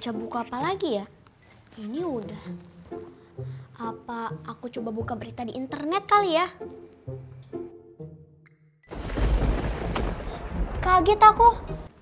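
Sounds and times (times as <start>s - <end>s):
thunderclap with deep rumble: 8.9s - 11.8s.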